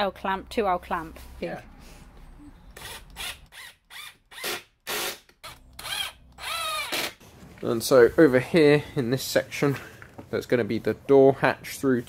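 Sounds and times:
impact driver motor whining: 2.8 - 7.2.

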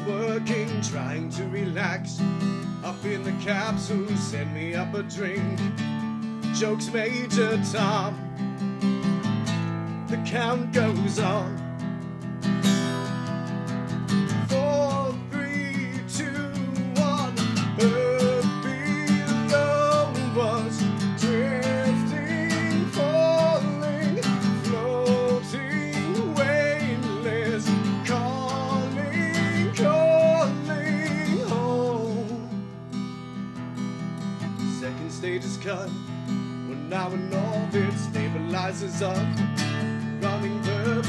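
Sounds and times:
man singing: 0.0 - 8.4, 10.0 - 11.7, 14.4 - 32.8, 34.4 - 41.0
acoustic guitar strumming: 0.0 - 41.0.

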